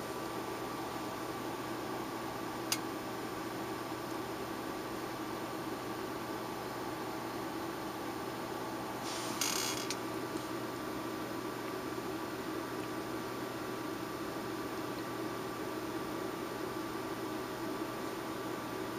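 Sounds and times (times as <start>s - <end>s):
faint constant hum: 0.0s - 18.9s
background hiss: 9.0s - 10.6s.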